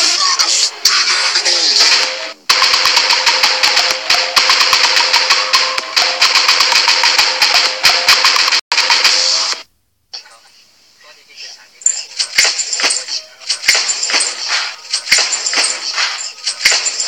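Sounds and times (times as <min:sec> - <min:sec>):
fast sharp clicks: 0:12.2 - 0:17.0.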